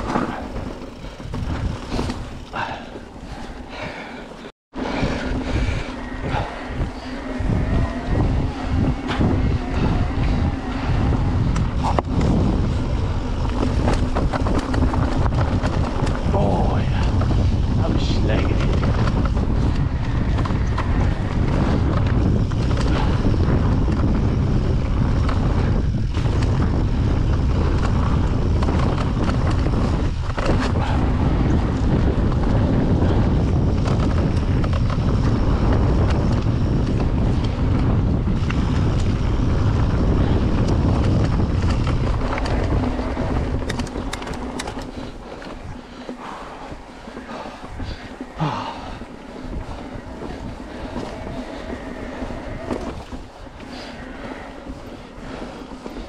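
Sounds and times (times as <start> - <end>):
tyres rumbling over dirt: 0.0 - 4.1, 4.8 - 56.0
wind buffeting microphone: 0.0 - 56.0
light clicks and rattles: 40.6 - 46.2.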